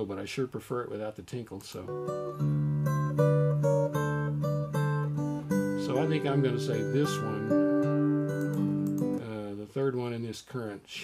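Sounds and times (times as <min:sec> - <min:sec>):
repeating chord pattern music: 0:01.9 - 0:09.2.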